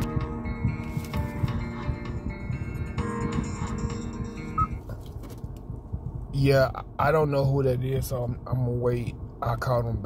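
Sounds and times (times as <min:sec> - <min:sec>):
phone ringtone melody: 0:00.2 - 0:04.8.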